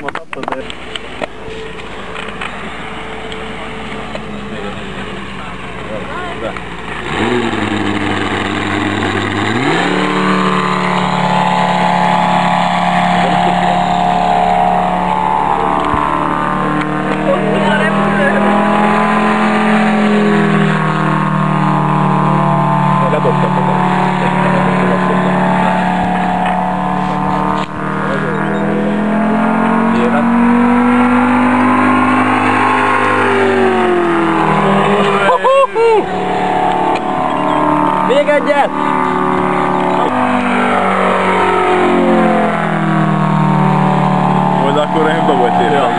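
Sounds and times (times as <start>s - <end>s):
model airplane engine: 0.0s - 45.9s.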